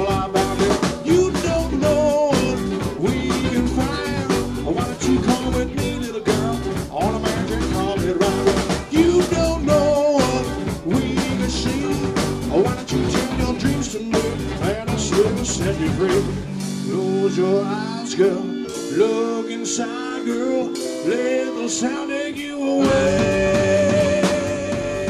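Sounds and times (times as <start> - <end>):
bending lead guitar line: 0.0 - 19.8, 22.8 - 25.0
live rock band playing: 0.0 - 25.0.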